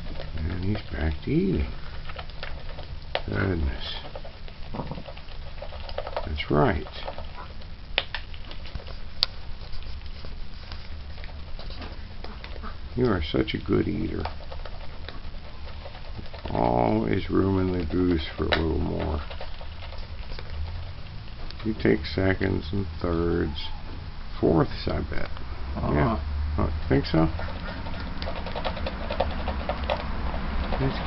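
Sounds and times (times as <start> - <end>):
goose bill clicking on feed bowl: 0.0 - 23.9, 26.7 - 31.0
low steady rumble: 0.0 - 31.0.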